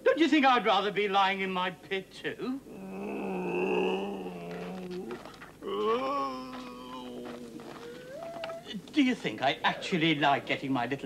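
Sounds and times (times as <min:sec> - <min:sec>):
person groaning: 0:02.7 - 0:08.7.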